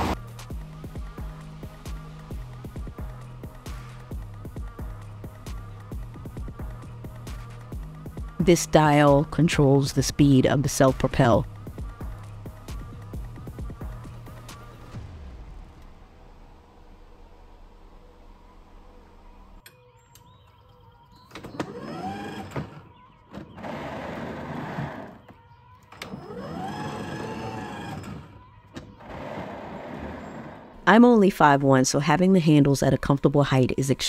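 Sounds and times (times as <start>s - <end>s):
background music: 0.0s - 34.0s
electric drive motor whirring: 21.5s - 22.9s, 25.9s - 28.4s.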